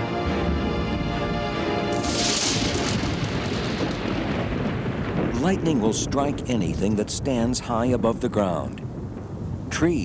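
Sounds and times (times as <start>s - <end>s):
background music with held notes: 0.0s - 2.5s
thunder crack and rumble: 1.9s - 10.0s.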